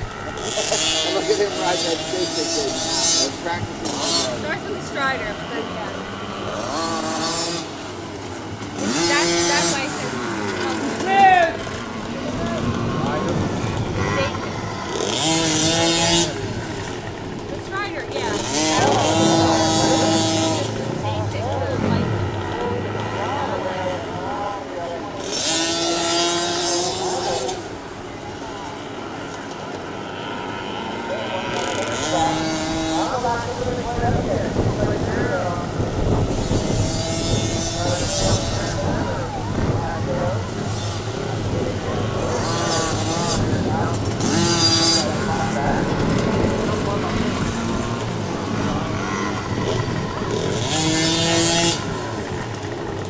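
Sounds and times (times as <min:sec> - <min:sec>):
dirt bike engines revving: 0:00.0 - 0:53.0
dirt bikes passing by: 0:00.0 - 0:53.0.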